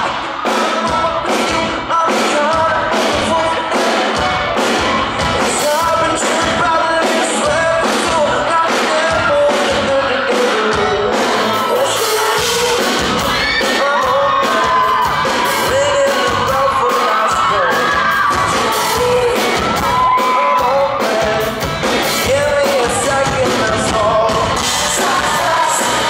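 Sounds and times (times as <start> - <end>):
drums: 0.0 - 26.0
lead singer singing: 0.0 - 26.0.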